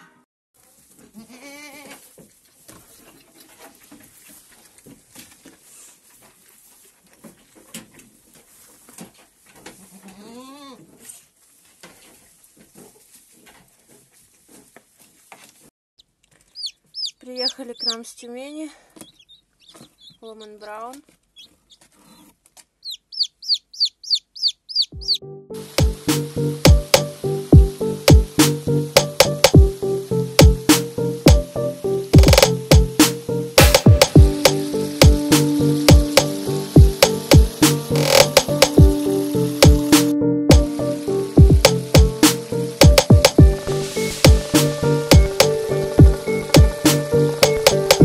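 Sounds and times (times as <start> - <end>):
knocks and rustling in straw: 0.6 - 1.2, 1.8 - 15.7
goat bleating: 1.1 - 2.0, 9.8 - 10.9
chicks peeping: 16.0 - 18.3, 19.0 - 25.2
music with a steady beat: 25.0 - 29.8, 30.4 - 48.0.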